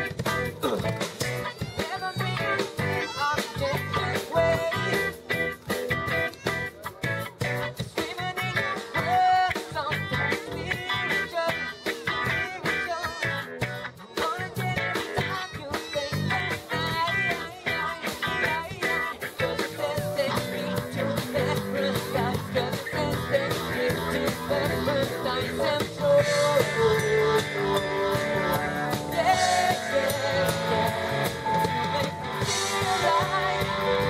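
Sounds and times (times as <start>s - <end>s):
bass guitar: 0.0s - 34.0s
drums: 0.0s - 34.0s
electric guitar: 0.0s - 34.0s
keyboard: 0.0s - 34.0s.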